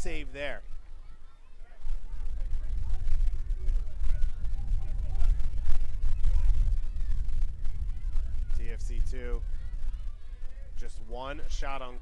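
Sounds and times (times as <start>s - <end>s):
low rumble on microphone: 0.0s - 12.0s.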